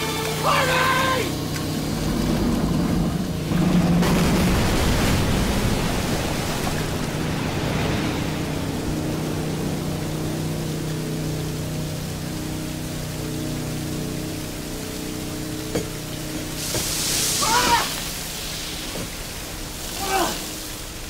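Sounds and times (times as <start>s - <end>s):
man shouting: 0.0s - 1.4s, 17.4s - 18.0s, 20.0s - 20.4s
low steady drone: 0.0s - 21.0s
water pouring and spraying: 0.0s - 21.0s.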